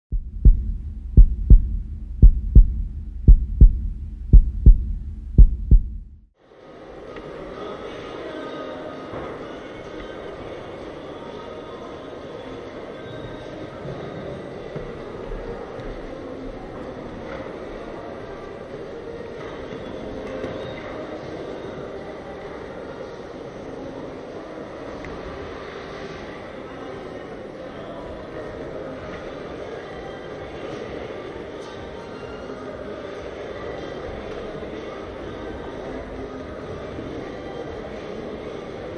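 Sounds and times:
heartbeat double thumps: 0:00.1 - 0:06.3
low hum: 0:00.1 - 0:06.3
indoor arena background noise: 0:00.1 - 0:38.9.

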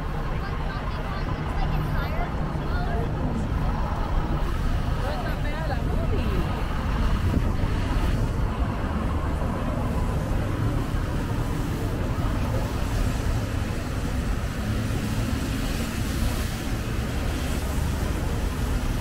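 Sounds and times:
faint passers-by voices: 0:00.0 - 0:19.0
traffic rumble: 0:00.0 - 0:19.0.

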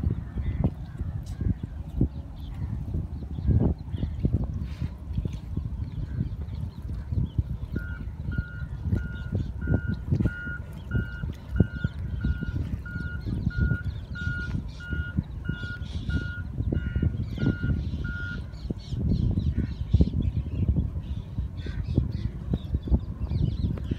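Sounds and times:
reversing alarm beeping: 0:07.8 - 0:18.4.

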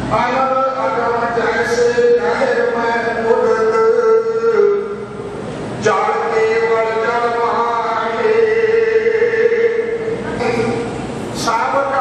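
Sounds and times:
man chanting a long note: 0:00.1 - 0:05.2, 0:05.8 - 0:10.8.

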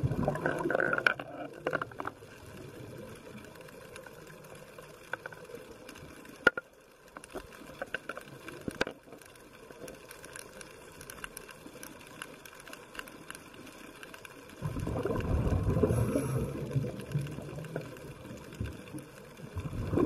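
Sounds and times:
low underwater hiss: 0:00.0 - 0:20.0
sharp clicks and crackles: 0:00.0 - 0:20.0.

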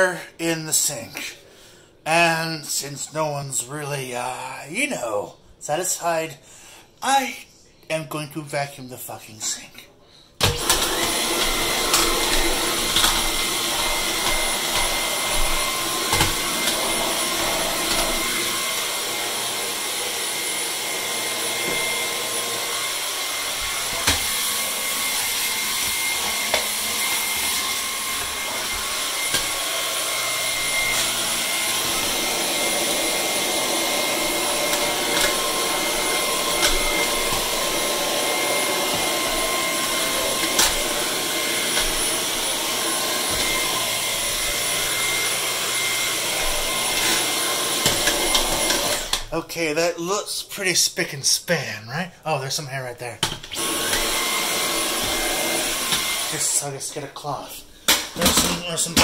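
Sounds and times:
handheld vacuum cleaner whining: 0:10.4 - 0:49.4, 0:53.2 - 0:56.7, 0:57.8 - 0:59.0.

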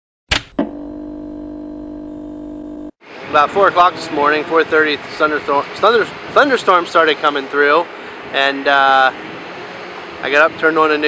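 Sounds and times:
held electronic chord: 0:00.6 - 0:03.0.

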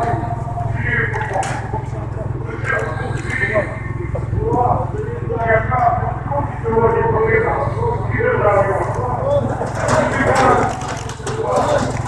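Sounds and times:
motor engine drone: 0:00.0 - 0:12.0
voices talking: 0:00.0 - 0:12.0.

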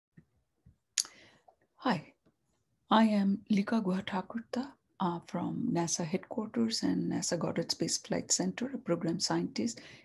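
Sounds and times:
woman speaking: 0:01.8 - 0:02.1, 0:02.9 - 0:09.8.

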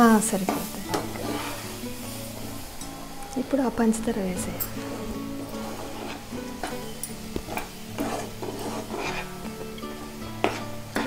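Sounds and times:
background music with low tones: 0:00.0 - 0:11.0
food sizzling: 0:00.0 - 0:11.0
metal spoon scraping a pan: 0:00.3 - 0:01.8, 0:04.4 - 0:11.0.

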